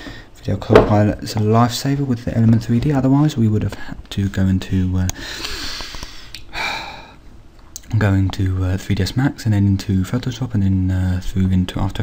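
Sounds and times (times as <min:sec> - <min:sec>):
man breathing close to microphone: 0:05.2 - 0:07.3.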